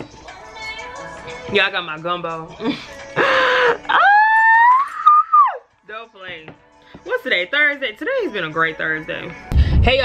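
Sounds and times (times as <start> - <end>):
woman squealing: 3.6 - 5.6.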